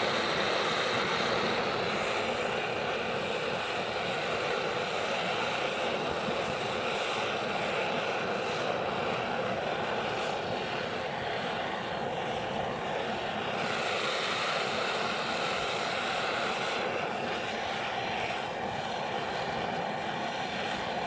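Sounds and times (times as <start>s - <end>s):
blowtorch flame roaring hiss: 0.0s - 21.0s.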